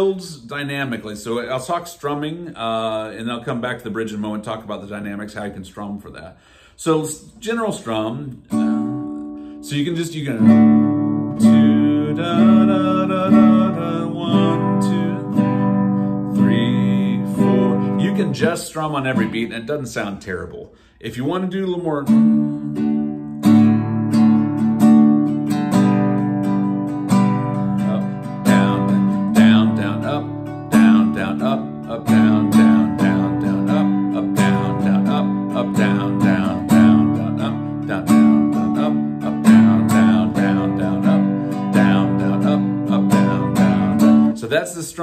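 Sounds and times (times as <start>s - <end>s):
classical guitar strumming chords: 8.0s - 19.6s, 22.0s - 44.4s.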